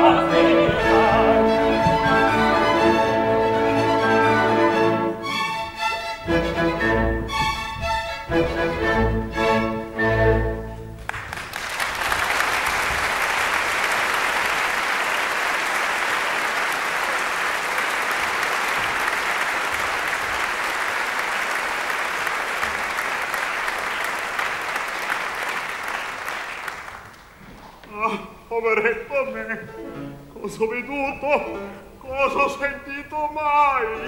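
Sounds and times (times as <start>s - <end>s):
orchestra playing: 0.0s - 11.1s, 29.2s - 32.6s, 33.3s - 34.0s
audience applauding: 11.0s - 27.8s.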